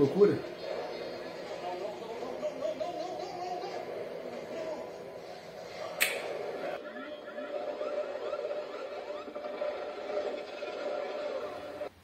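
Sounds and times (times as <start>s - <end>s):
action film soundtrack from television: 0.0s - 12.0s
sharp click: 6.0s - 6.2s.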